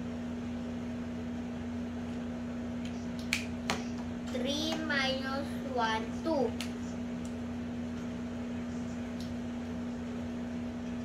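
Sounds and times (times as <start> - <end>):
child snapping fingers: 3.2 - 3.8.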